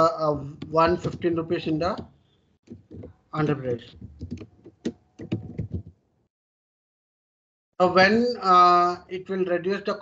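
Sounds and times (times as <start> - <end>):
typing on computer keyboard: 0.5 - 6.0.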